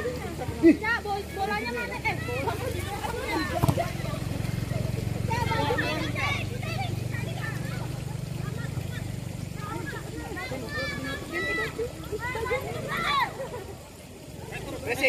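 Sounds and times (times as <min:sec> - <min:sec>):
ball being kicked: 0:03.5 - 0:04.1.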